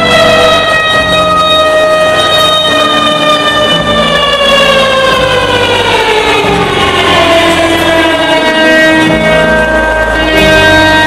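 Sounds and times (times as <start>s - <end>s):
instrument sliding down in pitch: 0.0s - 11.0s
steady bass notes: 0.0s - 11.0s.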